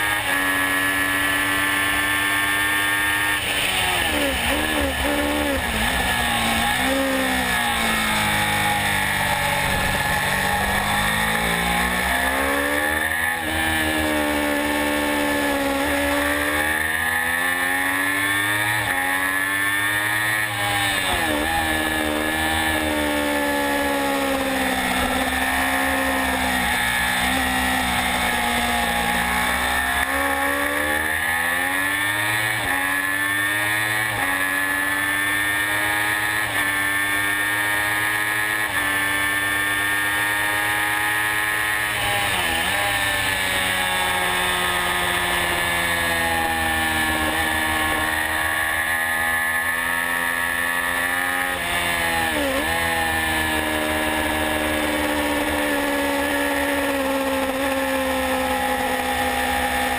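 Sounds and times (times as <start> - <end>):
motorcycle engine at racing speed: 0.0 - 59.9.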